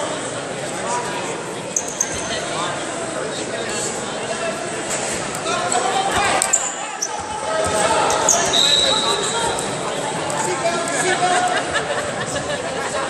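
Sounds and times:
shoes squeaking on mat: 0:01.8 - 0:02.5, 0:05.7 - 0:09.8.

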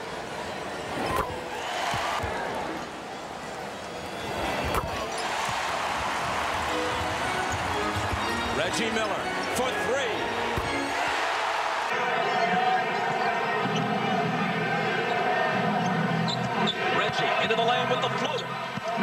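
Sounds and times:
arena crowd noise: 0:00.0 - 0:19.0
sneaker squeaks: 0:01.0 - 0:02.1, 0:06.8 - 0:09.5.

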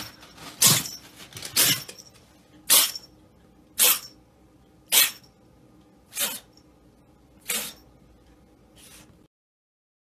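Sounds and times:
kitten sneezing: 0:02.7 - 0:03.0, 0:03.8 - 0:04.1, 0:04.9 - 0:05.2, 0:06.1 - 0:06.5, 0:07.4 - 0:07.8.

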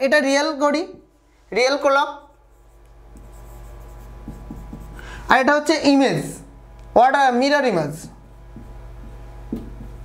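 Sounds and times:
marker writing on whiteboard: 0:02.2 - 0:05.5, 0:08.2 - 0:10.0.

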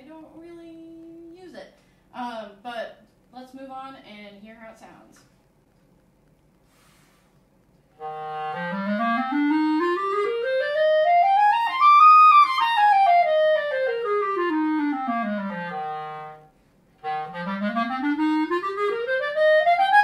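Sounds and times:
player breathing: 0:06.6 - 0:07.4
clarinet playing a fast scale: 0:08.0 - 0:20.0.

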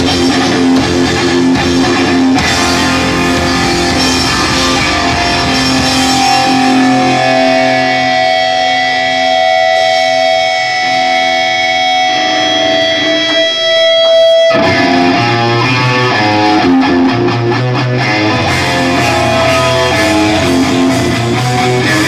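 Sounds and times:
distorted punk electric guitars: 0:00.0 - 0:22.0
drum hits: 0:00.2 - 0:07.6.

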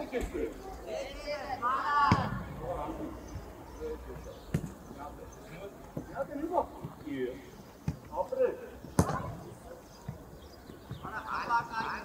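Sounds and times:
players shouting: 0:01.2 - 0:03.2
football kicked: 0:02.0 - 0:02.6.

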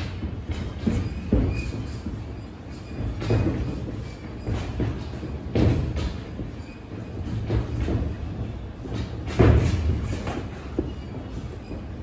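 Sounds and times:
feet shuffling on ring canvas: 0:00.0 - 0:12.0
shoe squeak: 0:00.0 - 0:12.0.

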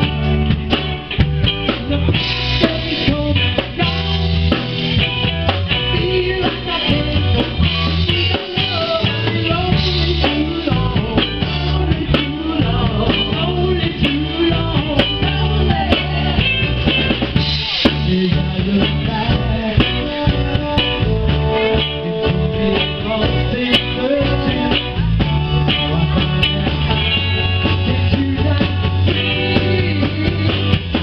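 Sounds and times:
live band playing: 0:00.0 - 0:31.0.

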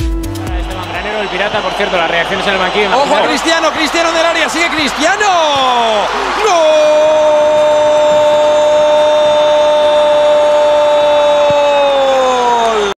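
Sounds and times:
commentator shouting goal call: 0:00.6 - 0:10.6.

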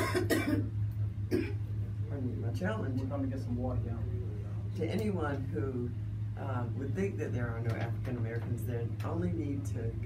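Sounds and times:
woman coughing: 0:00.0 - 0:00.7, 0:01.3 - 0:01.6.

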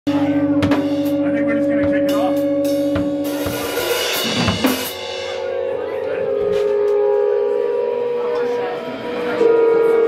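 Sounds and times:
people talking: 0:00.1 - 0:02.6, 0:03.3 - 0:10.0
electric guitar ringing tone: 0:00.1 - 0:10.0.

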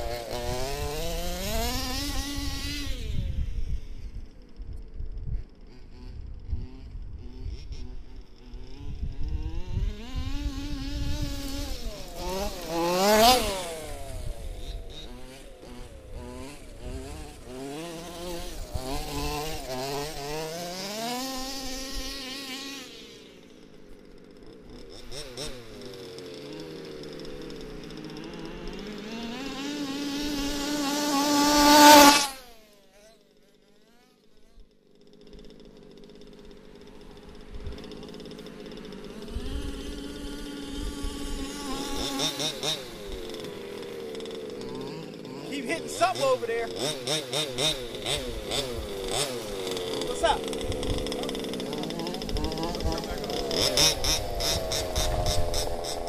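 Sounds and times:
small two-stroke engines revving: 0:00.0 - 0:56.0.

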